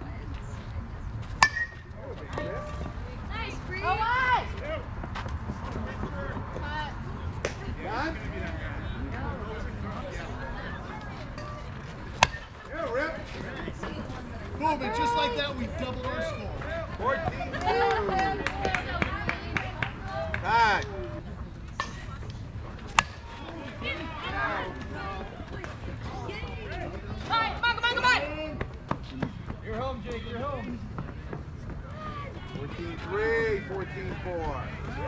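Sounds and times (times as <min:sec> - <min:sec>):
bat hitting softball: 0:01.4 - 0:02.0, 0:11.4 - 0:12.6, 0:22.9 - 0:23.3
players shouting and calling: 0:01.4 - 0:05.1, 0:05.8 - 0:35.0.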